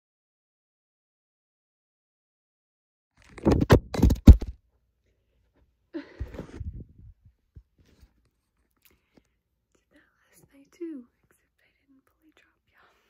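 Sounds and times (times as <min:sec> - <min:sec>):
woman whispering: 0:09.7 - 0:13.0.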